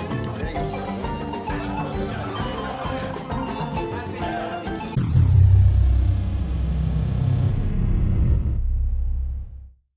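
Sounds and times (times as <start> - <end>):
high tone gliding down: 4.9 - 9.7
deep steady rumble: 5.0 - 9.7.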